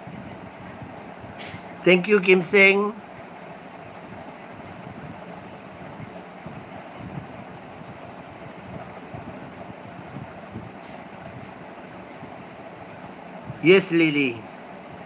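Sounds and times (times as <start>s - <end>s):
faint constant hum: 0.0s - 15.0s.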